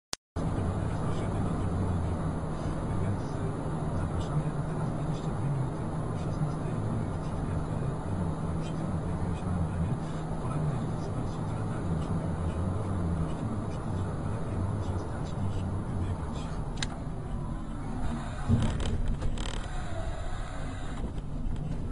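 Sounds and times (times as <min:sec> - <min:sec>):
vehicle engine and tyre drone: 0:00.4 - 0:21.9.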